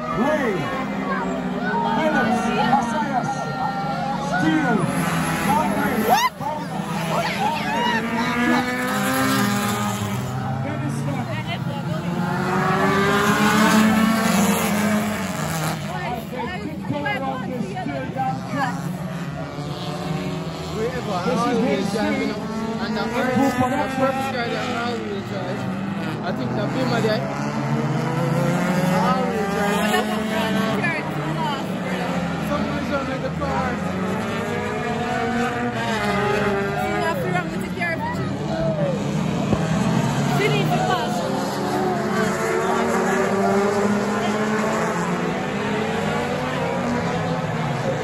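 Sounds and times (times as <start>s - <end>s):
race car engine passing: 0.0s - 48.0s
spectators talking: 0.0s - 48.0s.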